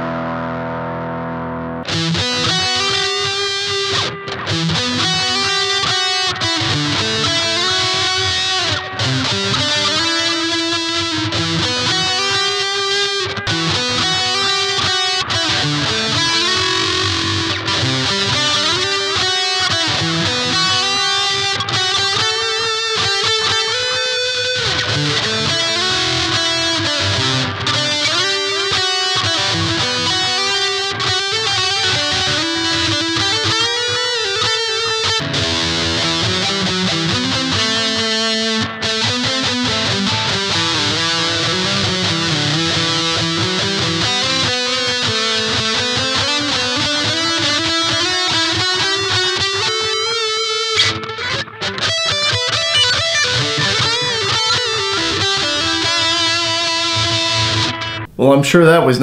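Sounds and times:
electric guitar lead line: 0:00.0 - 0:59.0.

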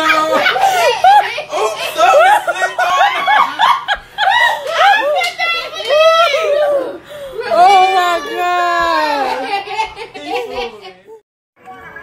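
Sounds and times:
people laughing loudly: 0:00.0 - 0:11.2.

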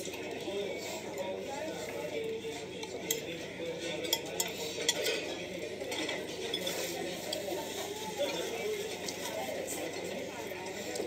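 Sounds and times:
dining room noise: 0:00.0 - 0:11.0
cutlery clinking on dishes: 0:02.8 - 0:07.5.

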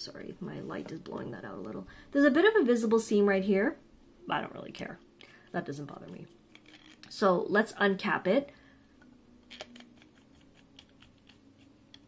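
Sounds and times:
pen cap clicking while twisted: 0:09.5 - 0:12.0.

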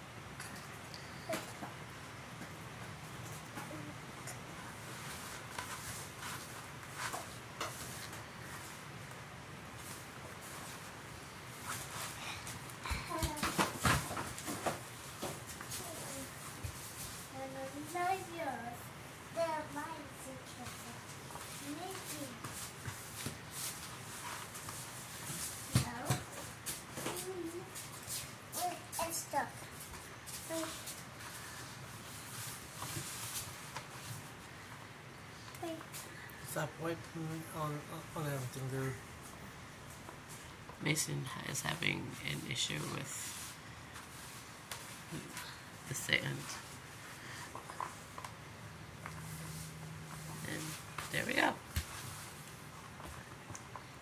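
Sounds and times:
young child's voice: 0:03.6 - 0:04.1, 0:12.8 - 0:13.6, 0:15.7 - 0:16.4, 0:17.3 - 0:22.4, 0:25.7 - 0:26.3, 0:27.0 - 0:27.8, 0:28.5 - 0:29.7, 0:30.4 - 0:30.9, 0:35.6 - 0:36.0.

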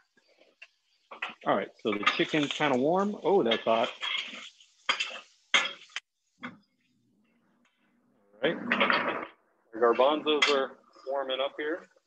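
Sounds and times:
metal tongs clinking on skillet: 0:01.1 - 0:02.8, 0:03.4 - 0:06.0, 0:10.3 - 0:10.7.

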